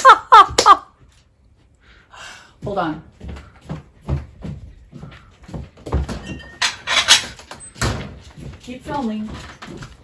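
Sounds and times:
footsteps on hard floor: 2.5s - 6.7s, 7.4s - 10.0s.

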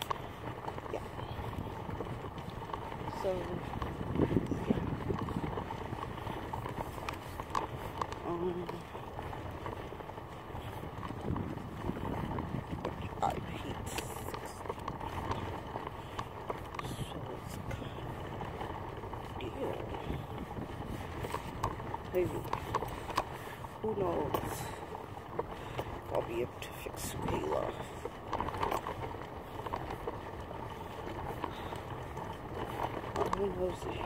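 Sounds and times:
light regular ticks: 0.0s - 34.0s
stroller rolling on asphalt: 0.0s - 34.0s.

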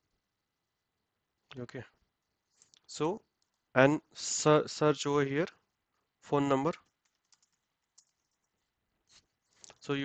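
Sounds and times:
faint keyboard keystrokes: 6.7s - 9.9s.

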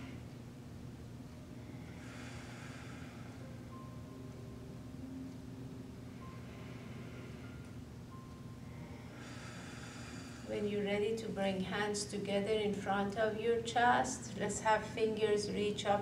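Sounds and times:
low hum: 0.0s - 16.0s
slow deep breathing: 1.5s - 3.8s, 6.0s - 7.9s, 8.6s - 10.5s.

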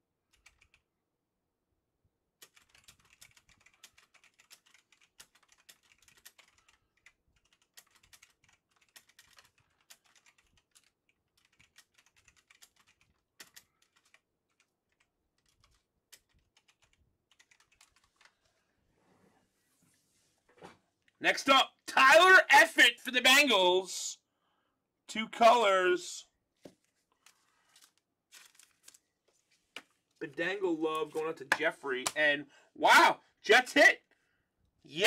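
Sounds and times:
typing on keyboard: 0.3s - 0.8s, 2.4s - 18.3s.

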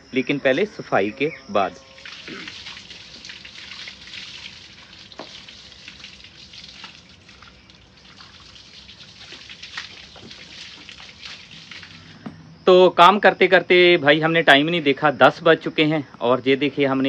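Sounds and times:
hose water spraying and splashing: 2.0s - 12.2s.

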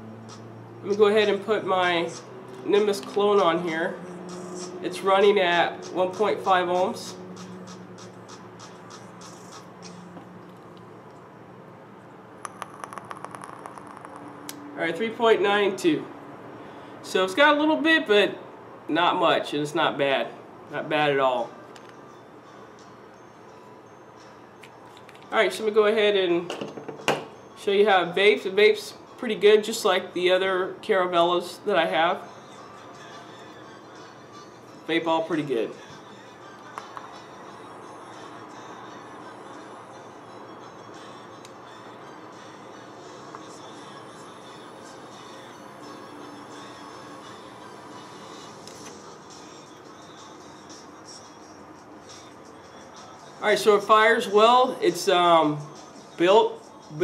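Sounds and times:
faint music-like tones: 17.9s - 57.0s.

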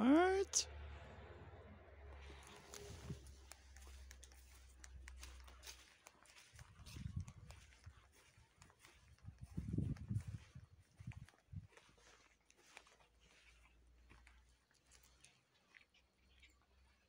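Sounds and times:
footsteps on grass and leaves: 2.6s - 15.3s.

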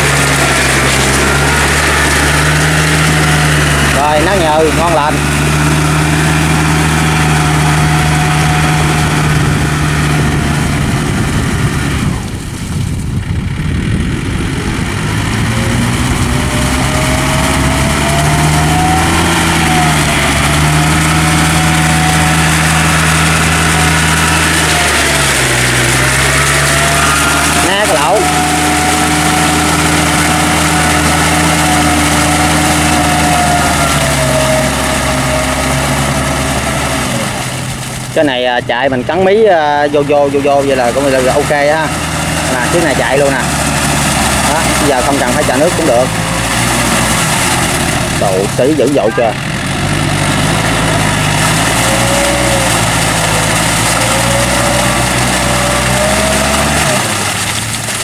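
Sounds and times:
tractor diesel engine under load: 0.0s - 58.0s.

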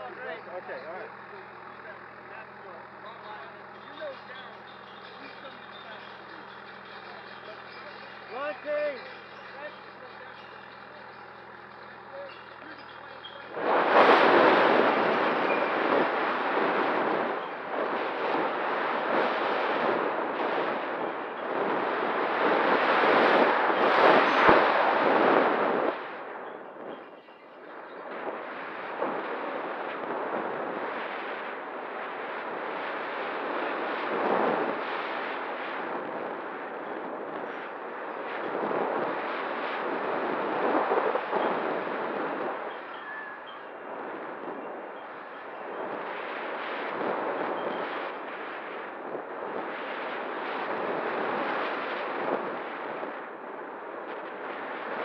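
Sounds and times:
low steady hum: 0.0s - 55.0s
wind buffeting microphone: 0.0s - 55.0s.

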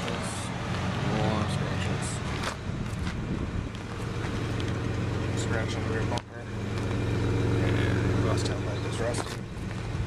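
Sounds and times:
vehicle engine idling: 0.0s - 10.0s
wind on microphone: 2.6s - 4.3s.

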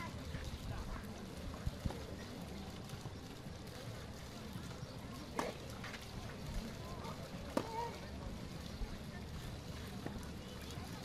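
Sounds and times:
low background murmur: 0.0s - 11.0s.

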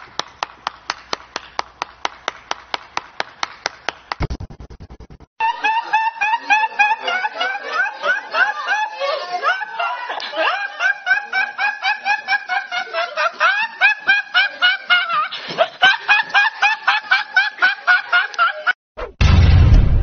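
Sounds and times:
young man laughing high-pitched: 5.4s - 18.8s.

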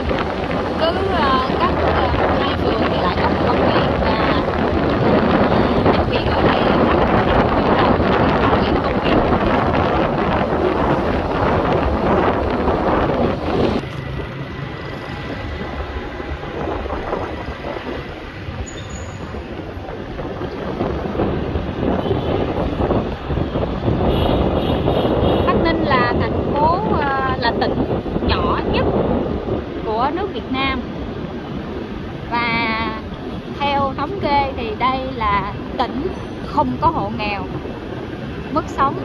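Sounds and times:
road traffic noise: 0.0s - 39.0s
wind buffeting microphone: 0.0s - 39.0s.

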